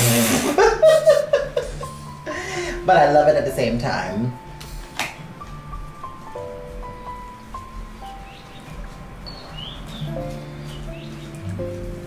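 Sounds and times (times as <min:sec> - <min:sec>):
faint bird chirps: 0:08.0 - 0:11.4.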